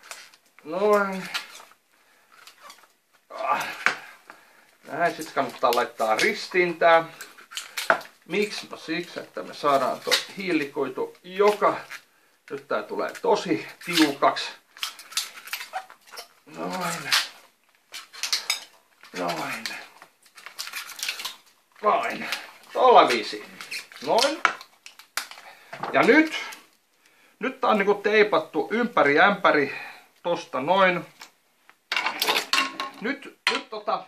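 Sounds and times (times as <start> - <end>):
tape peeling off roll: 0.0 - 4.3, 4.9 - 25.5
cling film rustling and clicking: 0.0 - 27.1.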